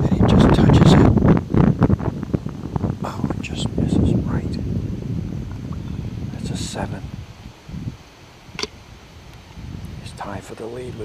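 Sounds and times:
wind buffeting microphone: 0:00.0 - 0:11.0
sharp click: 0:08.6 - 0:08.8.

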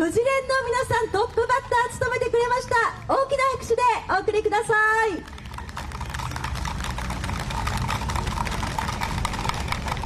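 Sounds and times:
audience applause: 0:05.2 - 0:10.0.

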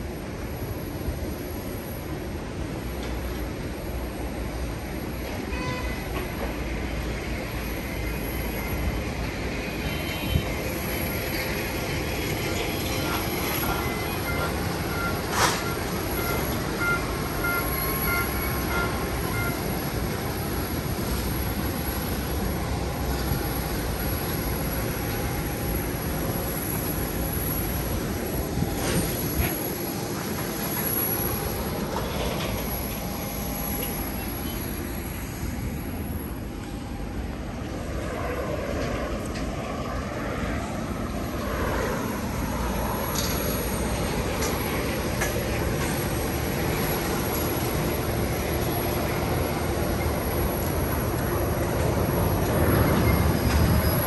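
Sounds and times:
airliners and ground equipment humming: 0:00.0 - 0:54.0
faint beeping tones: 0:10.2 - 0:20.4.

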